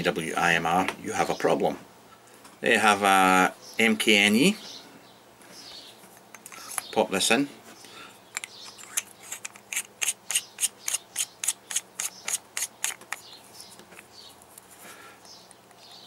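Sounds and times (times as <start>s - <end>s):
small sharp metal clicks: 8.3s - 14.6s.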